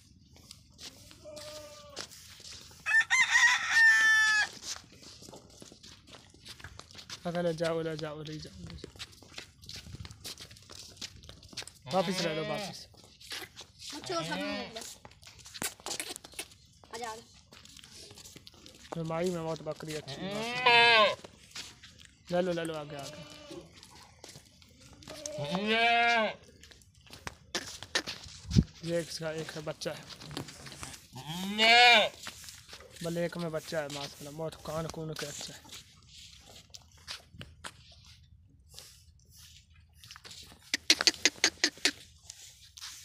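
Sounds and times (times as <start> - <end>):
goat bleating: 1.0 - 2.2, 11.8 - 12.8, 14.0 - 14.8, 20.0 - 21.2, 22.8 - 23.8, 25.0 - 26.4, 31.1 - 32.2
rooster crowing: 2.8 - 4.6.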